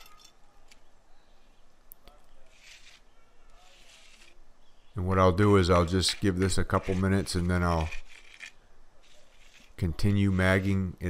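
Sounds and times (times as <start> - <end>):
hand edger scraping concrete: 2.5 - 4.4, 5.4 - 11.0.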